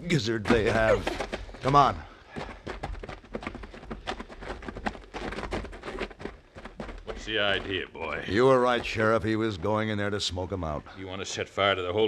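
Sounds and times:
dialogue: 0.0s - 12.0s
footsteps and knocks: 0.1s - 10.7s.

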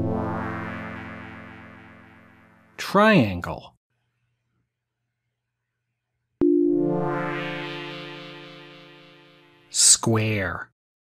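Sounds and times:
synthesized note ringing: 0.0s - 2.8s, 6.4s - 9.7s.

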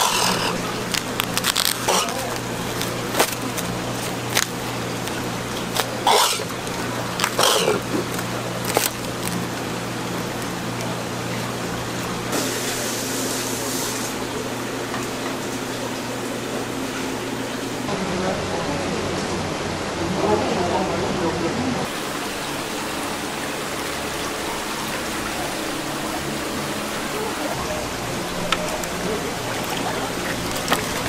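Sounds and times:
cling film crinkling and snapping: 0.0s - 12.1s, 28.5s - 31.0s
market chatter: 0.0s - 14.8s, 25.2s - 31.0s
steady low hum: 0.0s - 31.0s.

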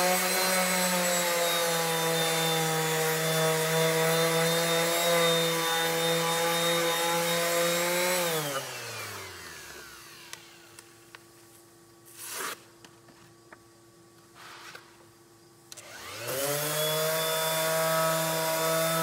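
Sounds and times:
electric sander on metal: 0.0s - 11.0s, 15.8s - 19.0s
sander whine winding down: 8.3s - 10.8s, 15.8s - 19.0s.

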